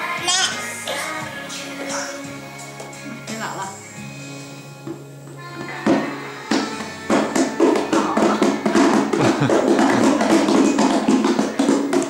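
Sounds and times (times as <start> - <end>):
background music: 0.0 - 12.0
plastic stool scraping on tile: 4.8 - 12.0.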